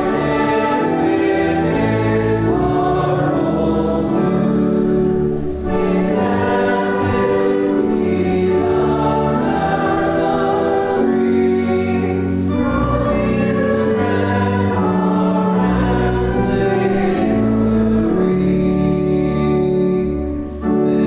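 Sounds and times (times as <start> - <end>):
congregation singing a hymn: 0.0 - 21.0
low sustained notes: 0.0 - 21.0.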